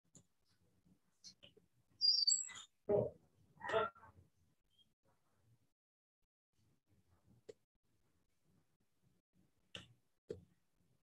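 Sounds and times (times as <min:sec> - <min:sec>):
bird chirping: 0:02.0 - 0:02.7.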